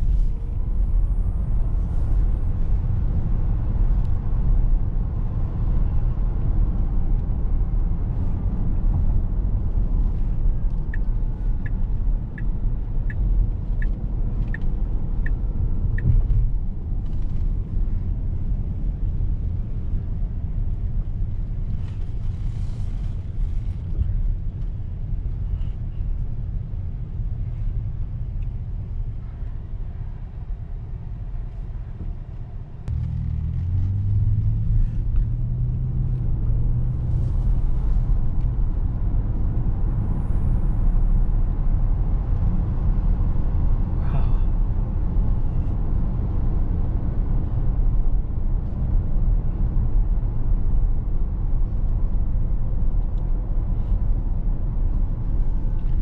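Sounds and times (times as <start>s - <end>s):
road and tyre rumble in car cabin: 0.0s - 56.0s.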